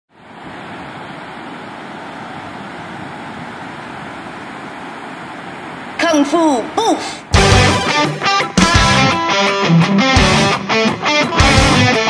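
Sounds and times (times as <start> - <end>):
ocean surf breaking: 0.1 - 12.0.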